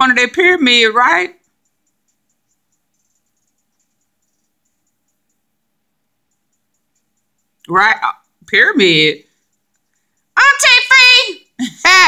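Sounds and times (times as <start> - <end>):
soft high-pitched chirps: 1.4 - 8.5, 9.3 - 10.4.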